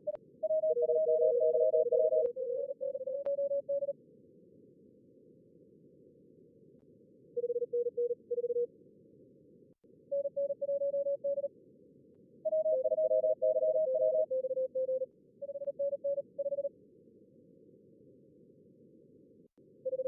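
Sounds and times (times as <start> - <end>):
morse code beeps: 0.5 - 3.9, 10.2 - 11.5, 12.5 - 16.7.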